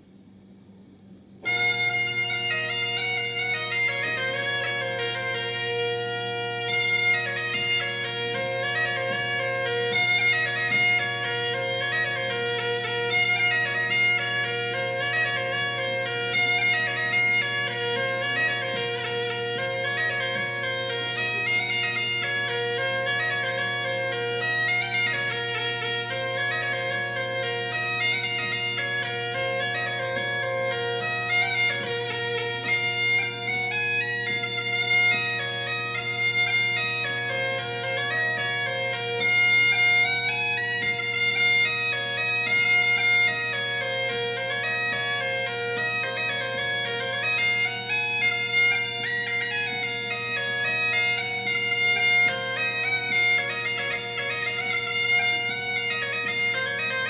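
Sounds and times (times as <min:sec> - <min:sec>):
bagpipe playing lively melody: 0:01.4 - 0:57.0.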